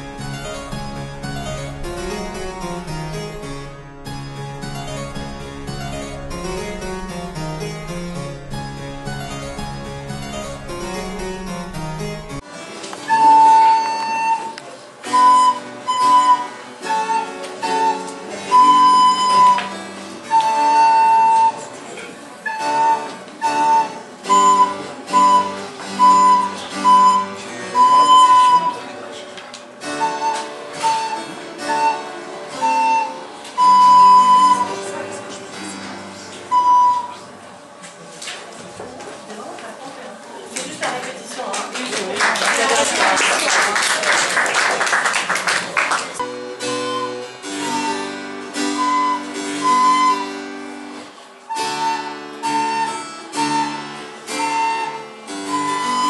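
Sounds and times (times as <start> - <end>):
recorder playing tune: 0.0 - 12.4, 13.0 - 21.7, 22.4 - 29.0, 29.8 - 35.1, 35.7 - 37.4, 46.2 - 56.0
harpsichord music: 0.0 - 37.8, 46.1 - 56.0.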